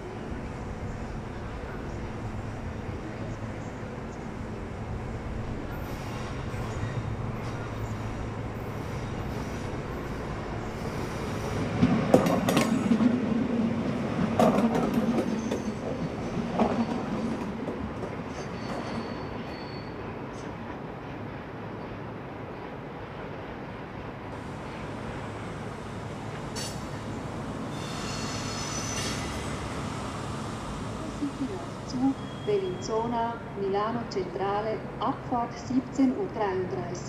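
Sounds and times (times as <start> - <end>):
train rolling rumble: 0.0 - 37.0.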